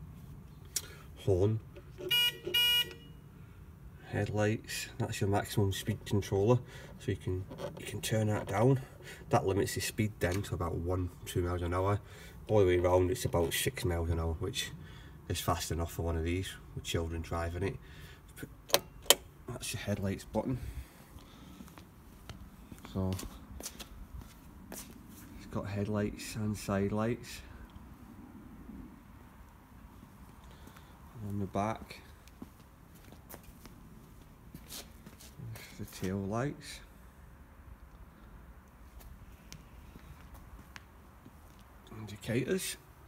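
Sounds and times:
faint low rumble: 19.4s - 33.0s
footsteps scuffing on paving: 21.0s - 25.3s, 31.8s - 36.2s, 38.8s - 41.8s.

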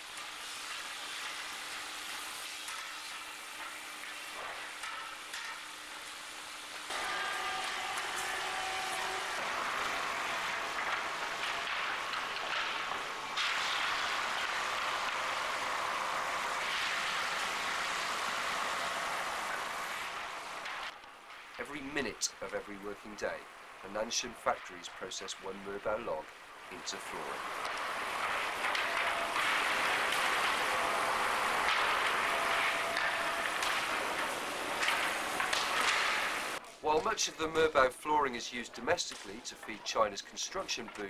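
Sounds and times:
sawmill machinery hissing: 0.0s - 20.9s, 22.4s - 36.6s.

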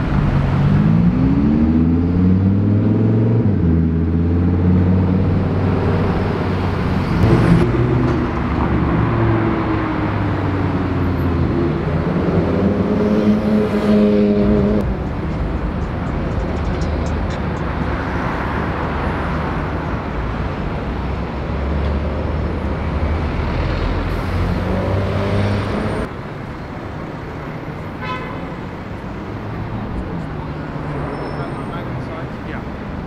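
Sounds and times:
passing cars: 0.0s - 33.0s
car horn toot: 28.0s - 28.6s.

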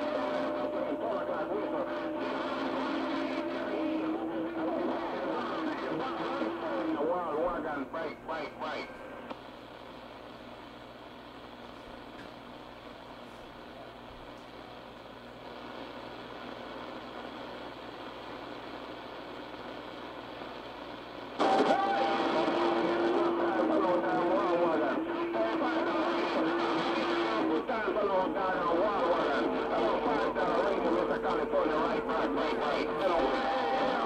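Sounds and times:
unintelligible radio voice: 0.0s - 9.0s, 21.4s - 34.0s
radio static hiss: 0.0s - 34.0s.

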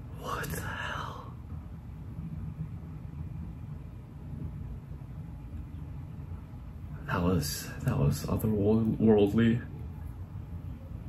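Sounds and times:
person whispering: 0.0s - 1.4s
low steady rumble: 0.0s - 11.0s.

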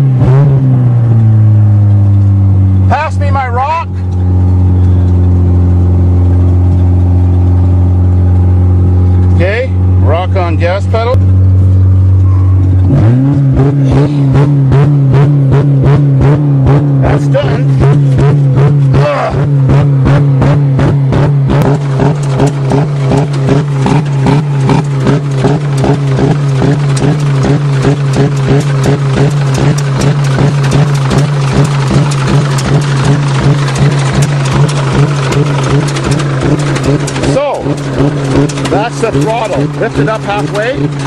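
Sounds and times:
car engine running flat out: 0.0s - 41.0s.

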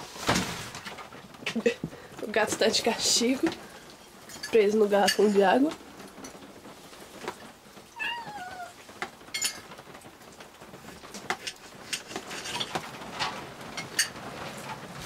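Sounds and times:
cat meowing: 7.9s - 8.8s.

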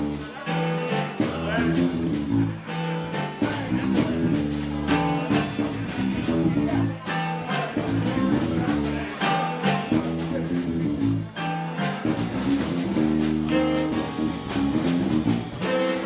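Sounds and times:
bass guitar: 0.0s - 16.0s
drum kit: 0.0s - 16.0s
keyboard: 0.0s - 16.0s
saxophone melody: 10.0s - 16.0s.

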